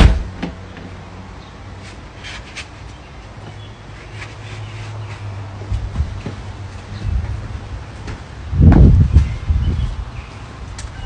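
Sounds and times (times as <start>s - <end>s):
thump: 0.0s - 0.5s
footsteps and paws on deck: 1.8s - 10.9s.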